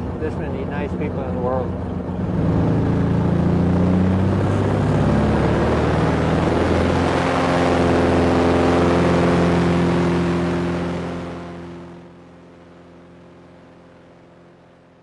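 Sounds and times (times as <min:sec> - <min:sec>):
propeller plane engine running: 0:00.0 - 0:15.0.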